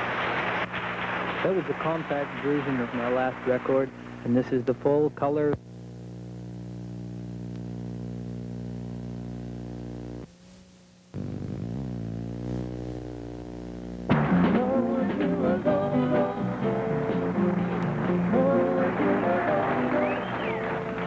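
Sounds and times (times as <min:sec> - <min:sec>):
held notes bending in pitch: 0:11.2 - 0:15.0.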